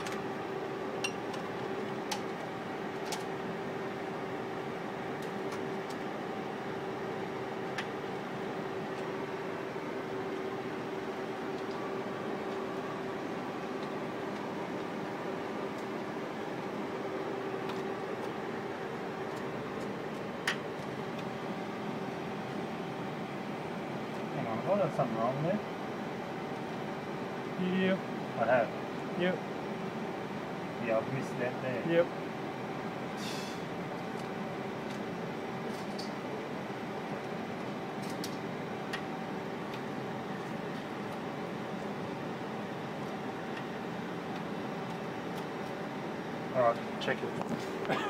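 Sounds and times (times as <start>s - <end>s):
steady mechanical hum: 0.0s - 48.0s.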